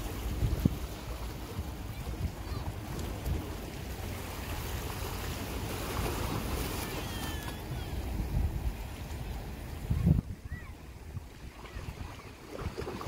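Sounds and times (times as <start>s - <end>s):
sea rushing: 0.0s - 13.0s
wind buffeting microphone: 0.0s - 13.0s.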